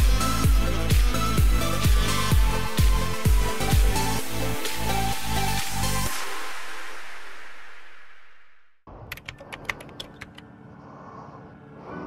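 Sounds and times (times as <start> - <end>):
sharp typing clicks: 9.0 - 10.5.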